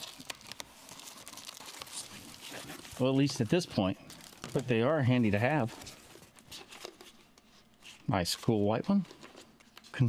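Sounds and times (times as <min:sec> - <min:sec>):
plastic bag rustling: 0:00.0 - 0:06.5.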